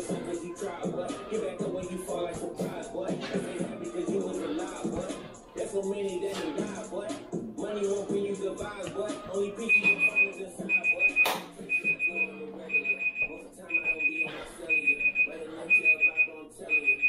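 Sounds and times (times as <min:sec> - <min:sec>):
digital timer alarm beeping: 0:09.6 - 0:17.0.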